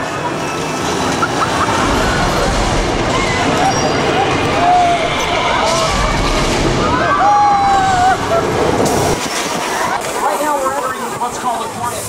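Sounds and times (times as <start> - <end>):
tram rolling rumble: 0.0 - 12.0.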